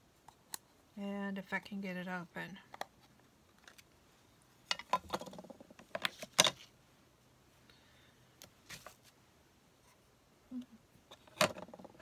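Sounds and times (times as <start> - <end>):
plastic case clicking and rattling: 4.7 - 6.7, 11.2 - 12.0.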